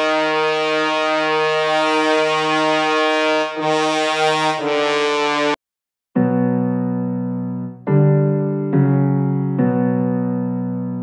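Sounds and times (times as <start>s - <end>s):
sustained horn chord: 0.0s - 5.6s.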